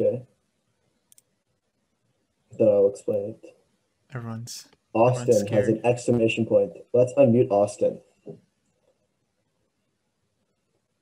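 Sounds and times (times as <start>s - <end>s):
man saying a word: 2.6s - 3.3s, 4.2s - 8.0s.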